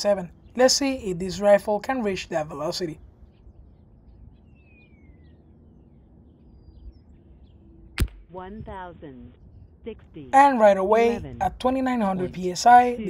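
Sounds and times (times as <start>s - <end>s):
air rifle shot: 8.0s - 8.3s.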